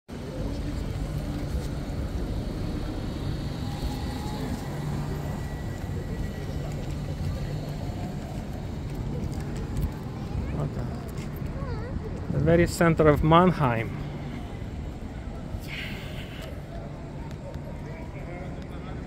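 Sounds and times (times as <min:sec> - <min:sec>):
city traffic rumble: 0:00.1 - 0:19.0
voices of passers-by: 0:00.1 - 0:19.0.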